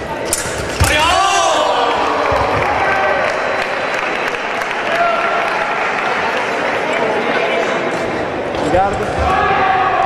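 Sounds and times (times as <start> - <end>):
spectators applauding: 1.9 - 7.2.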